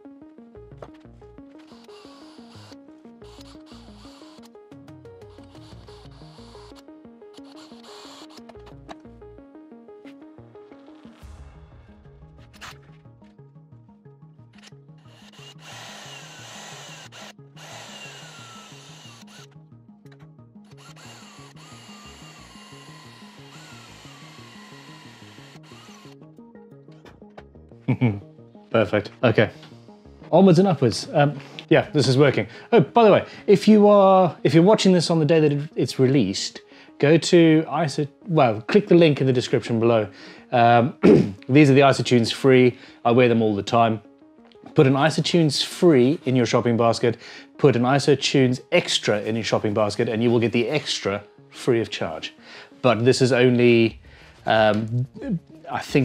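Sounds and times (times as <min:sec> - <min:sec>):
background music with steady beat: 0:00.0 - 0:56.0
cordless drill boring into wood: 0:01.6 - 0:04.5, 0:05.2 - 0:06.8, 0:07.4 - 0:08.7, 0:15.1 - 0:19.6, 0:20.7 - 0:26.2.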